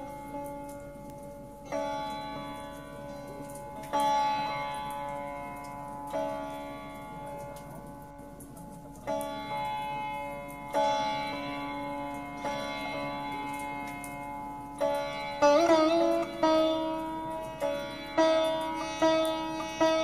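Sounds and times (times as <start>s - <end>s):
sitar plucked notes: 0.0s - 20.0s.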